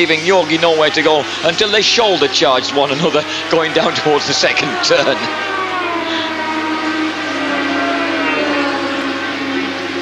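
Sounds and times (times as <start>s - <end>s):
racing engines droning: 0.0s - 10.0s.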